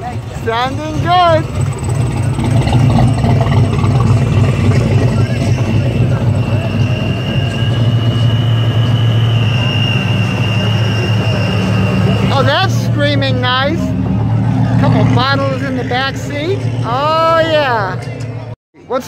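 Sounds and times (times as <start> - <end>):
deep engine exhaust rumble: 0.0 - 18.6.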